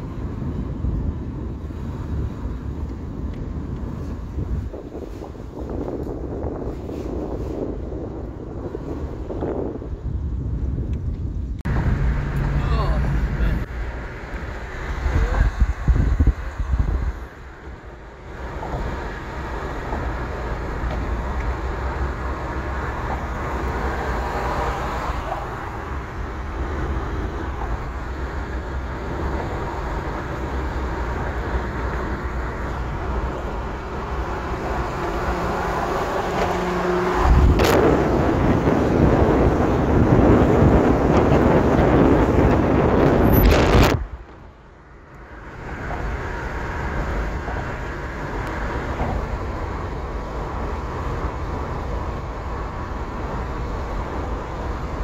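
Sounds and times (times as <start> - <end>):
road and tyre noise in car: 0.0 - 55.0
wind buffeting microphone: 0.0 - 55.0.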